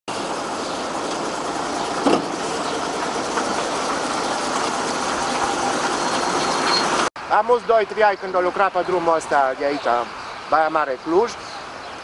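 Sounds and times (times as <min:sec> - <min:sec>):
fire truck engine running: 0:00.1 - 0:07.1
tyres hissing on wet asphalt: 0:00.1 - 0:07.1.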